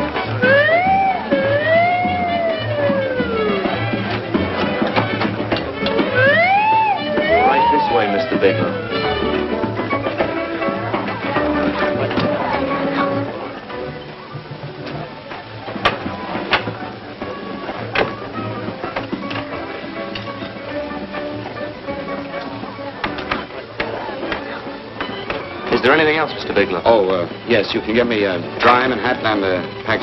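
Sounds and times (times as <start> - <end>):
film music: 0.0 - 12.9
man speaking: 7.3 - 8.8.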